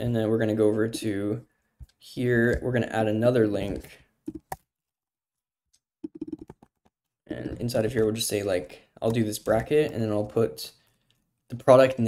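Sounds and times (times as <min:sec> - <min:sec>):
computer keyboard typing: 0:06.0 - 0:06.9.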